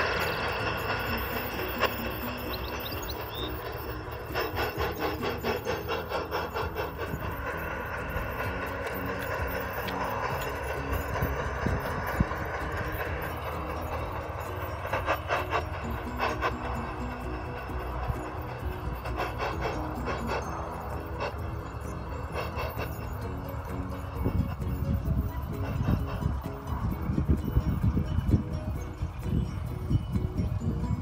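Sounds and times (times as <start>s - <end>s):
background music: 0.0s - 31.0s
model train wheels clicking: 0.0s - 31.0s.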